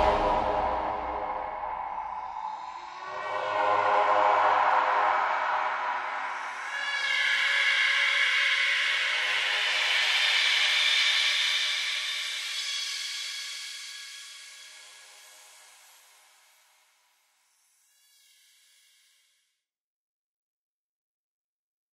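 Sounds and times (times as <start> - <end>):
hissy synth chord: 0.0 - 3.4
faint tonal swell: 0.0 - 9.8.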